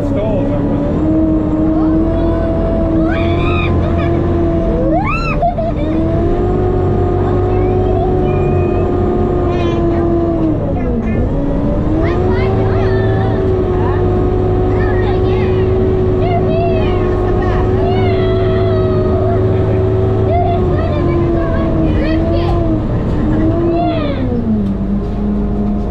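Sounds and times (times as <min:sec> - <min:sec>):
vehicle engine drone in cabin: 0:00.0 - 0:25.9.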